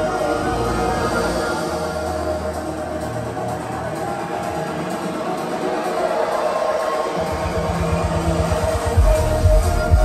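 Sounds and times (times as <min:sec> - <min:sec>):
loud deep house music: 0:00.0 - 0:10.0
rumbling bass pulses: 0:07.9 - 0:10.0.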